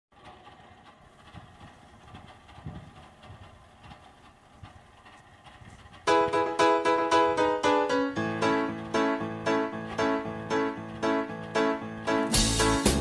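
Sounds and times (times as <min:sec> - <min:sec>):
soft low thumps: 0:01.3 - 0:04.0.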